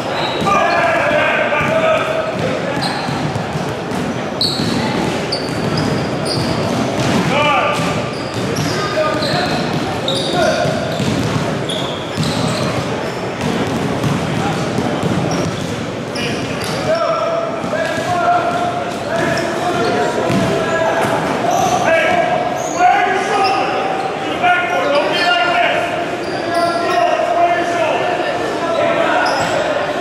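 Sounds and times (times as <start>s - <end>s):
voices in sports hall: 0.0s - 30.0s
basketball bouncing: 1.6s - 16.8s, 20.3s - 20.6s.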